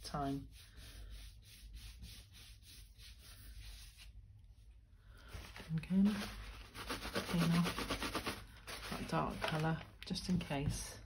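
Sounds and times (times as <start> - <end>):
brush rubbing ink on card: 0.3 - 4.1, 6.2 - 9.2.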